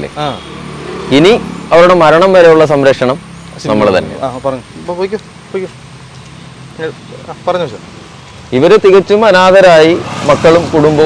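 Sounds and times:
man speaking: 0.0 - 5.8, 8.5 - 11.0
outdoor background hiss: 0.0 - 11.0.

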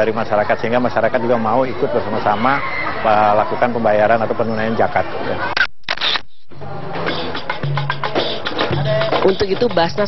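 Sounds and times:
camera shutter click: 5.5 - 6.4
music with steady beat: 6.3 - 10.0.

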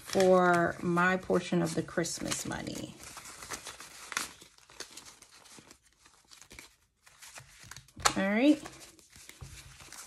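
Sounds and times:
paper banknotes rustling: 0.0 - 10.0.

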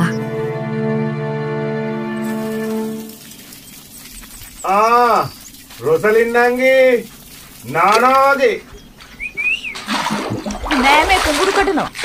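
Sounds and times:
rushing splashing water: 2.2 - 12.0.

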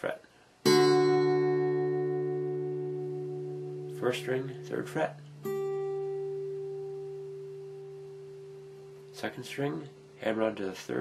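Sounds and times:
plucked guitar string ringing: 0.7 - 9.2.

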